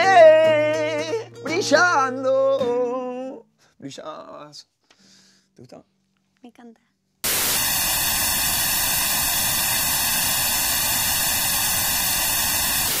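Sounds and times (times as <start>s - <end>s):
television static hiss: 7.2s - 13.0s.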